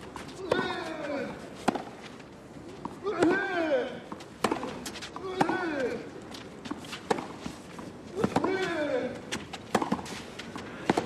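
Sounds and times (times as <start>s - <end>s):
tennis ball hitting racket: 0.4s - 2.1s, 2.8s - 11.0s.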